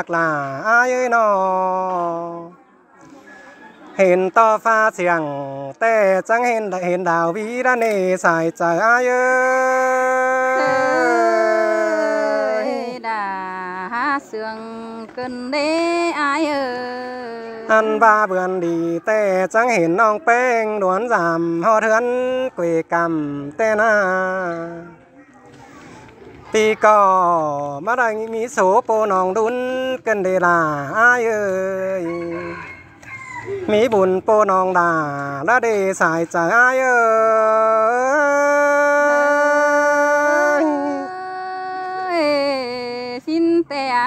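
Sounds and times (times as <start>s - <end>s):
person singing a long note: 9.2s - 19.0s, 36.8s - 43.3s.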